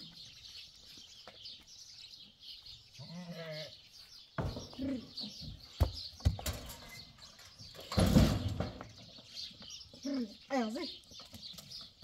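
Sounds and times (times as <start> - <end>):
goat bleating: 3.0 - 3.8.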